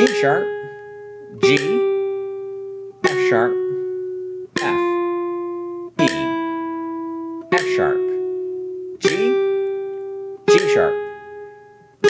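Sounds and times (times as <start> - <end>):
man speaking: 0.0 - 2.0, 3.0 - 3.9, 4.6 - 5.4, 6.0 - 6.5, 7.5 - 8.2, 9.0 - 9.5, 10.5 - 11.1
classical guitar note plucked: 0.0 - 12.0.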